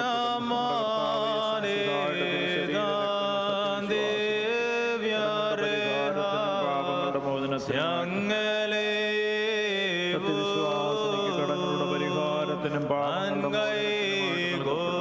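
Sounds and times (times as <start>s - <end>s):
voices chanting a hymn: 0.0s - 15.0s.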